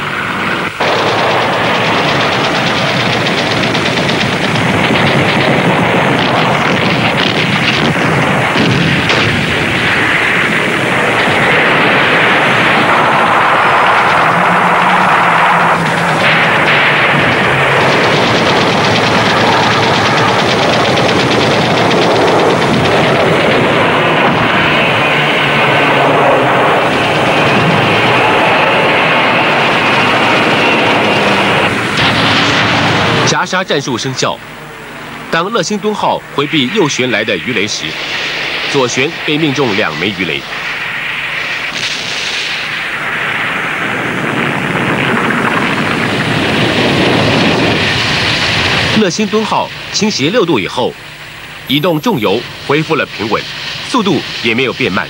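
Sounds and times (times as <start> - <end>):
rapid machine-gun fire: 0.4 - 33.4, 37.6 - 49.6
heavy gun reports: 0.6 - 43.1, 45.6 - 55.0.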